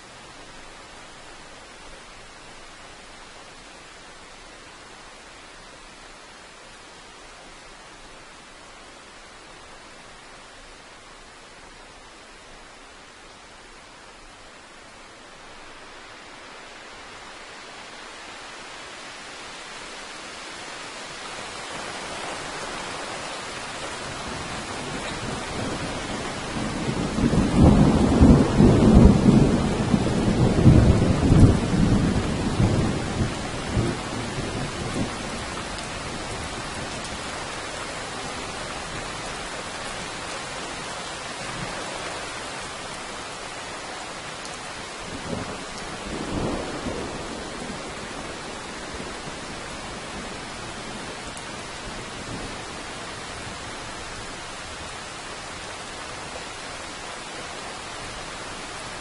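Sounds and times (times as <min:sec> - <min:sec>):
steady rain: 0:00.0 - 0:59.0
thunder rumbling: 0:24.2 - 0:35.6, 0:45.2 - 0:50.2.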